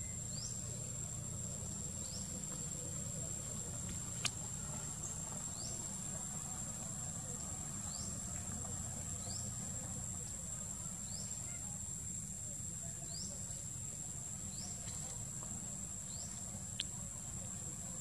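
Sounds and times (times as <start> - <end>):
low outdoor rumble: 0.0 - 12.4.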